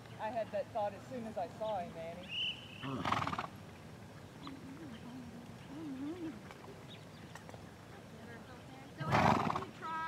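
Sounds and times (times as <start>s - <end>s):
horse snorting: 2.8s - 3.5s, 9.0s - 9.7s.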